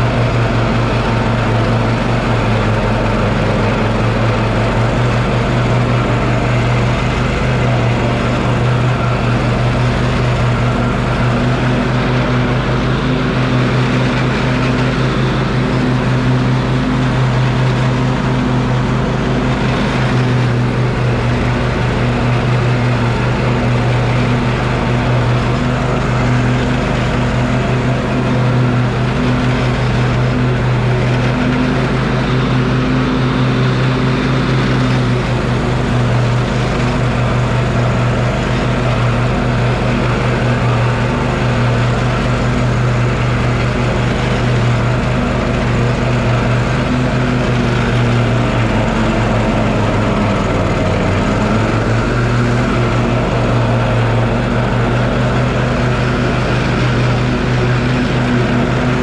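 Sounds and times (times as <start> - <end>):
riding mower engine cutting grass: 0.0 - 59.0.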